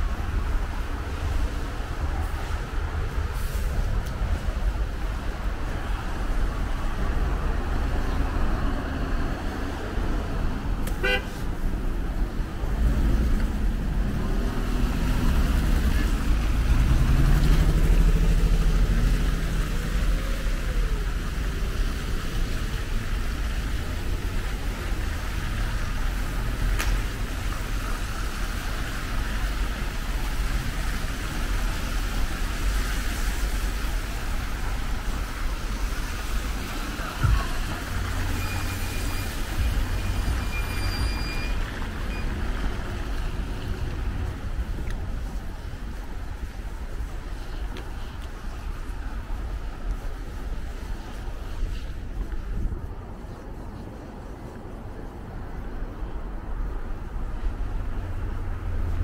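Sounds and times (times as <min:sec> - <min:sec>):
steady low traffic rumble: 0:00.0 - 0:59.0
vehicles passing: 0:00.0 - 0:59.0.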